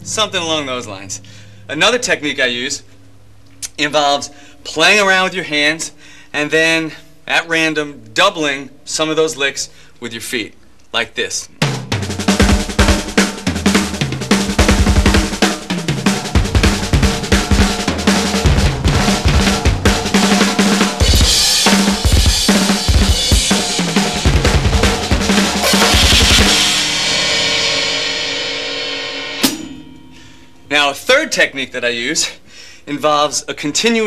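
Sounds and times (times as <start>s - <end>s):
drum fills on snare and toms: 11.6s - 28.4s, 29.3s - 29.8s
double bass drum flurries: 11.8s - 30.3s
cymbal crashes: 12.0s - 31.3s.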